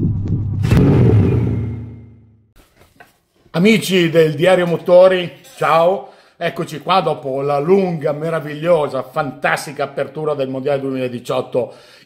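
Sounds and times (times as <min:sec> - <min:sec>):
low rumble: 0:00.0 - 0:02.4.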